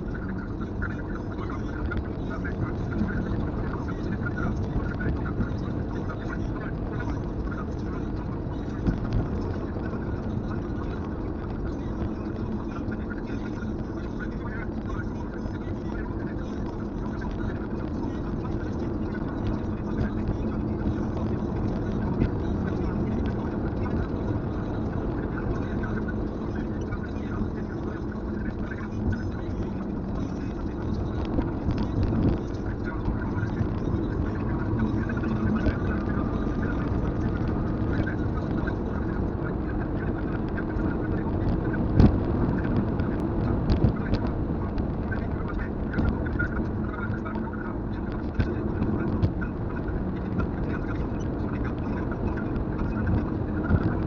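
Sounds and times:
car road and engine noise: 0.0 - 54.0
low hum: 0.0 - 54.0.

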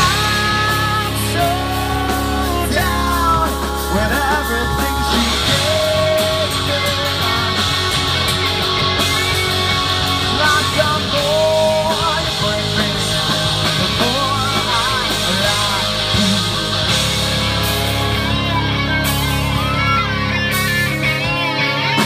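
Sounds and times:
bending guitar lead line: 0.0 - 22.0
punk rock band playing: 0.0 - 22.0.

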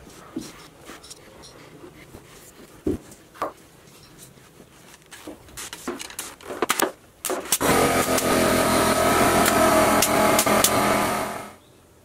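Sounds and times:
nail gun firing shots: 6.6 - 11.1
loud steady motor: 7.6 - 11.6.

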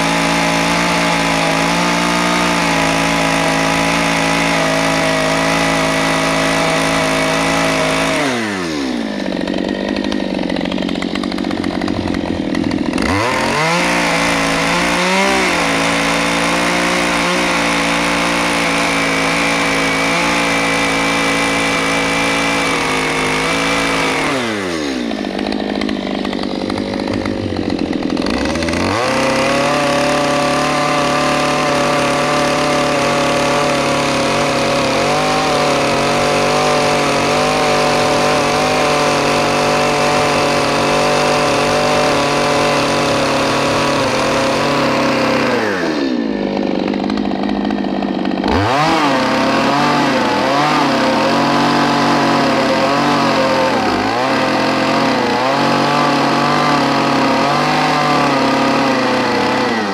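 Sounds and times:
chainsaw cutting log: 0.0 - 59.9.

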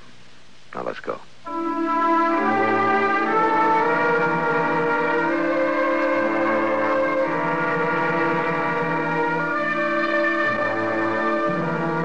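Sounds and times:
orchestral brass chords: 1.5 - 12.0.

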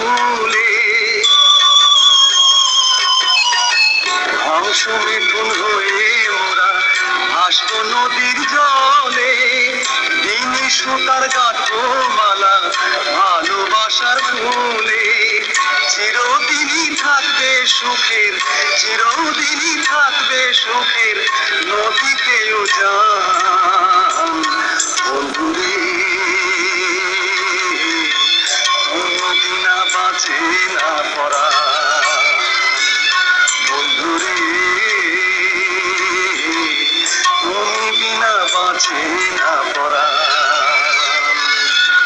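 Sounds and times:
instrumental backing: 0.0 - 42.0
person singing: 0.0 - 42.0.

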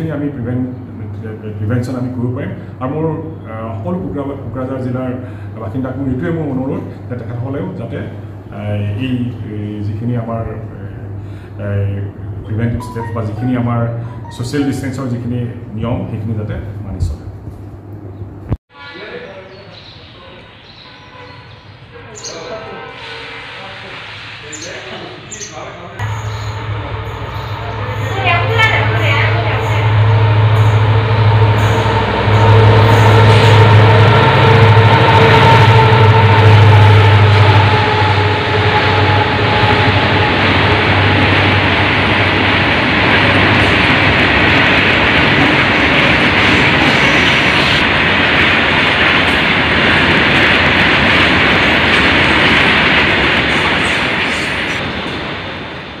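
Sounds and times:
train wheels on rails: 19.6 - 56.0.

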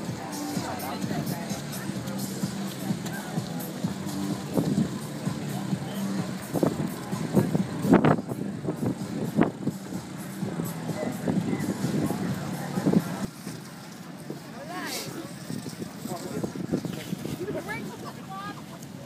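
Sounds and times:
background music: 0.0 - 13.3.

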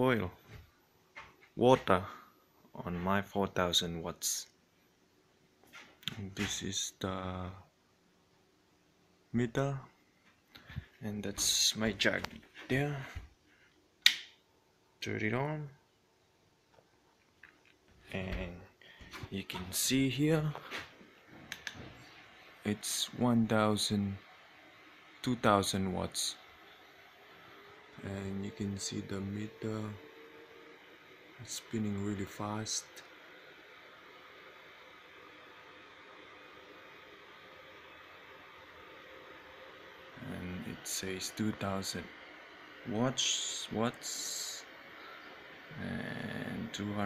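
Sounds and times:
faint hum: 0.0 - 47.0
faint steady hiss: 0.0 - 47.0
kettle switch click: 14.0 - 14.3.

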